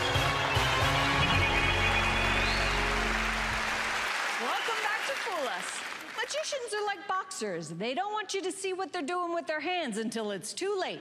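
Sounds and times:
game-show theme music: 0.0s - 4.1s
studio audience cheering and applauding: 0.0s - 6.7s.

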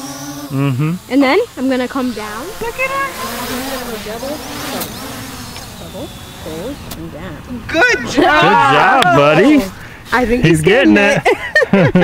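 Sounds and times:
drone propellers buzzing: 0.0s - 12.0s
sharp click: 4.7s - 5.7s, 6.8s - 7.1s.

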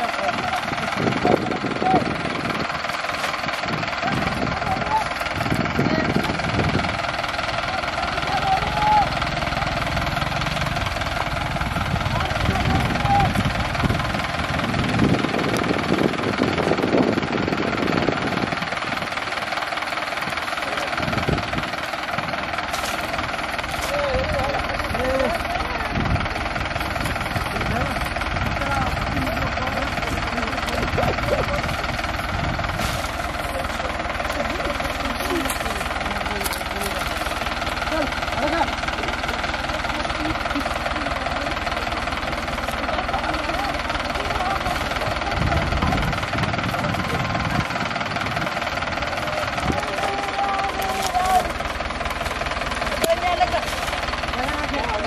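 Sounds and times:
engine hum: 0.0s - 55.0s
people calling: 0.0s - 55.0s.

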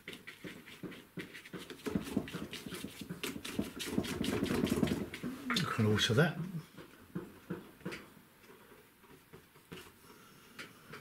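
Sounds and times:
brush scrubbing paint on paper: 0.0s - 6.2s.

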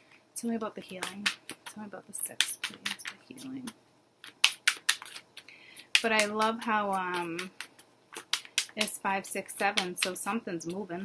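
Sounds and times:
cards clicking and snapping: 2.4s - 9.0s.

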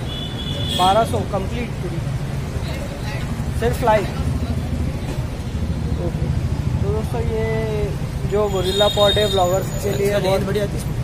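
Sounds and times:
street traffic rumble: 0.0s - 11.0s
voices: 0.4s - 11.0s.

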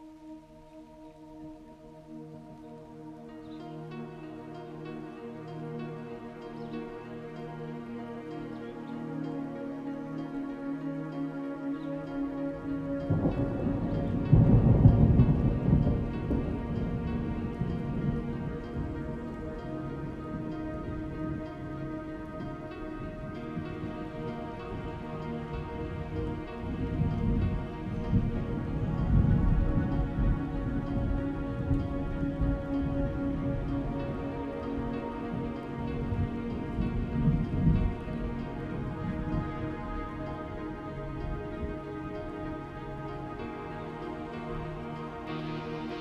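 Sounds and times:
rain: 0.0s - 46.0s
soft ambient music: 0.0s - 46.0s
thunder rumbling: 12.9s - 46.0s.

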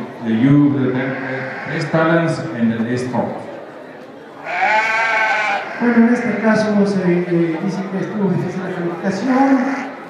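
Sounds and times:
sheep bleating: 0.9s - 2.0s, 4.4s - 6.7s, 9.4s - 10.0s.

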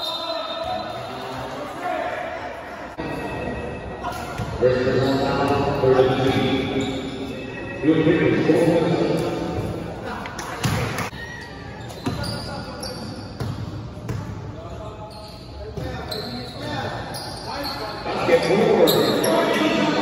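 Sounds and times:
voices of players and spectators: 0.0s - 20.0s
basketball bouncing on indoor court: 11.9s - 14.6s.

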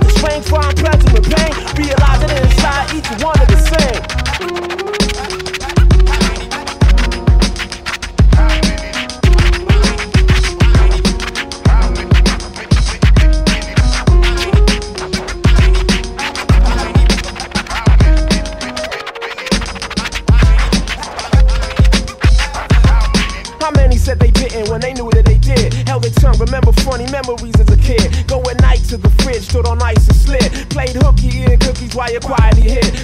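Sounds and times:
heavy kick drum: 0.0s - 1.4s, 2.0s - 2.8s, 3.4s - 3.9s, 5.8s - 7.5s, 8.2s - 11.1s, 11.7s - 15.9s, 16.5s - 17.1s, 17.8s - 18.4s, 21.4s - 23.1s, 23.8s - 24.4s, 25.1s - 25.6s, 26.2s - 26.9s, 27.6s - 28.0s, 28.6s - 29.3s, 30.0s - 31.8s, 32.4s - 33.0s
bass line: 0.0s - 18.6s, 20.2s - 33.0s
instrumental hip hop beat: 0.0s - 33.0s
turntable scratching: 0.0s - 33.0s.

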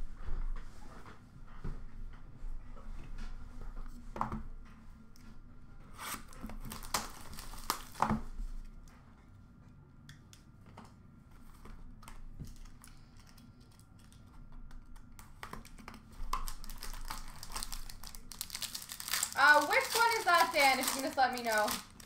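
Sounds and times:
cardboard box and plastic wrap handling: 6.0s - 8.2s, 16.2s - 22.0s.

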